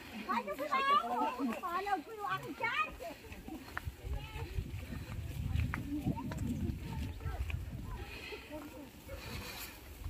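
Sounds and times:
faint voices: 0.0s - 10.0s
footsteps through tall grass: 0.0s - 10.0s.

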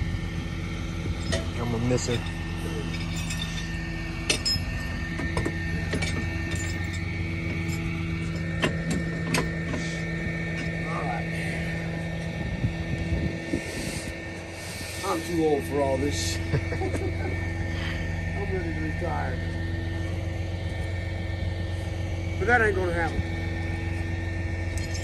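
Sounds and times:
truck engine idling: 0.0s - 25.0s
metallic chain clinks: 1.2s - 5.0s, 5.9s - 7.9s, 24.8s - 25.0s.

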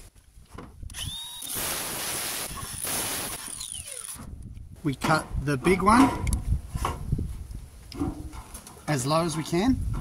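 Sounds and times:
power tool cutting sheet metal: 1.0s - 4.3s.

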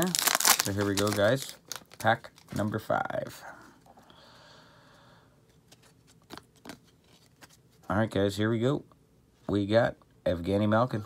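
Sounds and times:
trading cards rustling: 0.0s - 3.0s, 5.5s - 7.8s.

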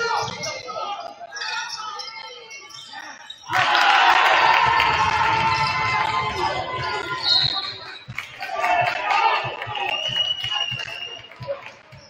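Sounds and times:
gym chatter: 0.0s - 12.0s.

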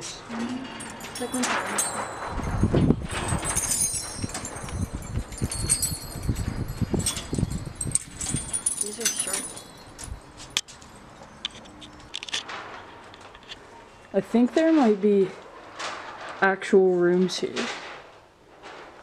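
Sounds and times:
metal keys jangling on a rack: 0.4s - 12.4s.

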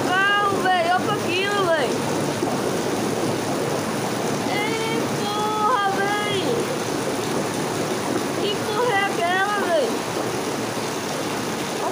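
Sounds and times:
floodwater rushing: 0.0s - 11.9s
heavy rain falling: 0.0s - 11.9s.

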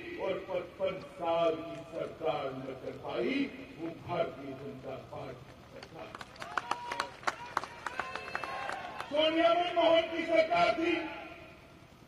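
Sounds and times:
crowd clapping: 5.4s - 9.2s.

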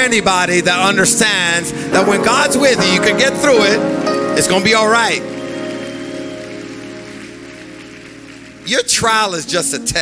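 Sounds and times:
worship band sustained chords: 0.0s - 10.0s.

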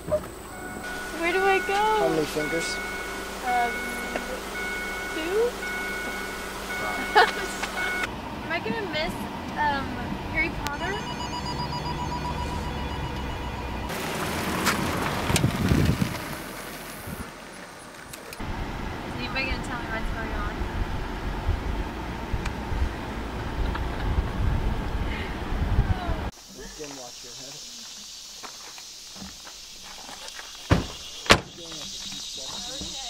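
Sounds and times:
voices: 0.0s - 14.0s, 19.1s - 20.6s, 25.9s - 28.1s, 30.7s - 33.0s
rumble inside moving car: 0.0s - 26.3s
car passing by: 0.6s - 10.4s, 13.8s - 25.4s.

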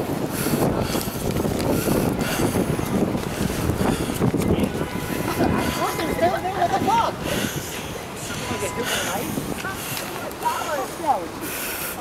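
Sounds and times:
wind buffeting microphone: 0.0s - 11.6s.

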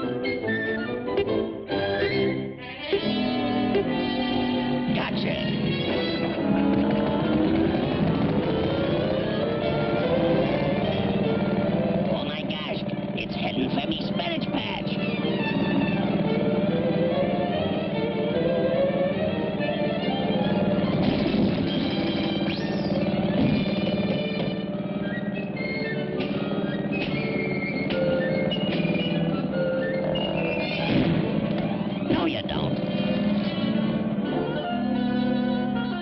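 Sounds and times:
cartoon background music: 0.0s - 36.0s
lawnmower motor drone: 0.0s - 36.0s
rapid clicks and knocks: 6.6s - 8.1s.

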